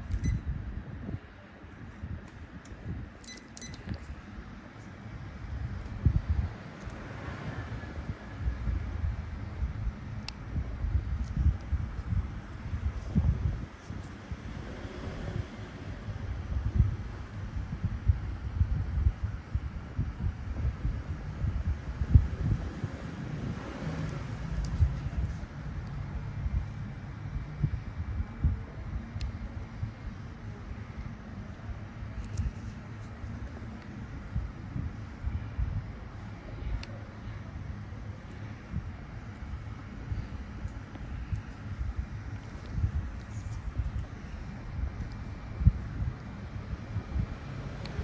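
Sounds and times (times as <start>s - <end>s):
low rumbling background noise: 0.0s - 48.0s
high-pitched metallic pings: 0.1s - 0.5s, 3.2s - 3.8s.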